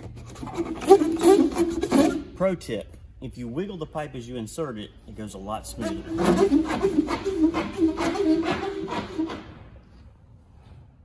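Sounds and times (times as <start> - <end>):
plastic pipe squeaking against rubber: 0.0 - 2.4, 5.8 - 9.5.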